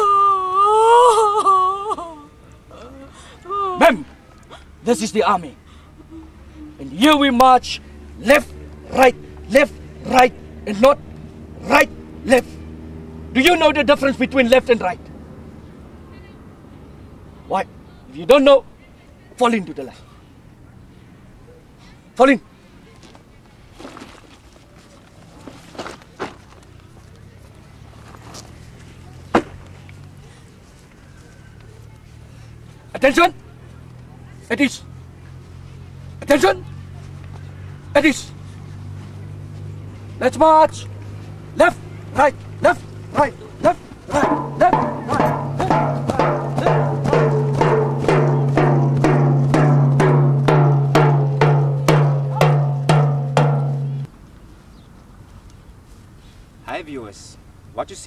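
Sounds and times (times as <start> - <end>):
soft footsteps on grass: 22.9 - 34.1, 55.0 - 56.5
drum marching beat: 41.6 - 54.1.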